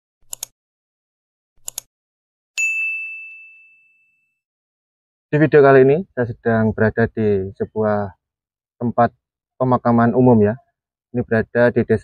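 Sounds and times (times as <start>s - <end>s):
high bell ding: 2.6s - 4.4s.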